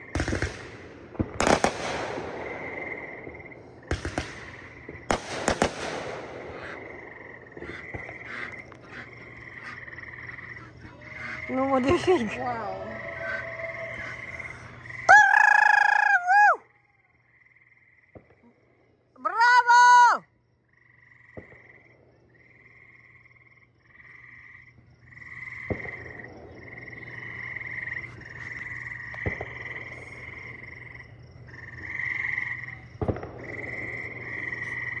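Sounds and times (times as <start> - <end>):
frogs trilling: 6.4 - 18.1, 22.4 - 35.0
rooster crowing: 15.1 - 16.6.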